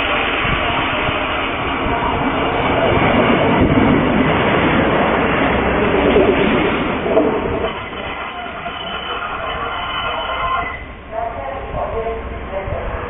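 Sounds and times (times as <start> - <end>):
train wheels rumbling on rail: 0.0 - 13.0.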